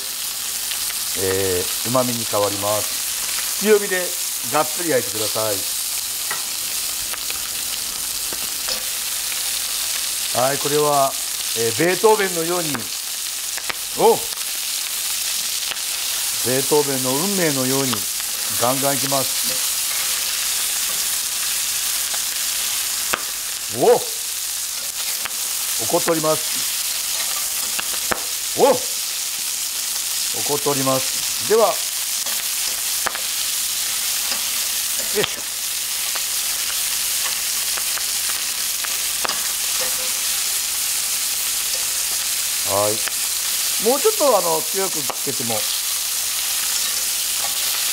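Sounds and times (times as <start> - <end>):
chicken sizzling in oil: 0.0 - 47.9.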